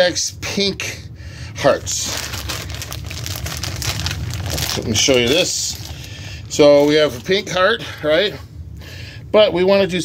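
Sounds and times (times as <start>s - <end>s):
plastic bag crinkling: 1.6s - 8.2s.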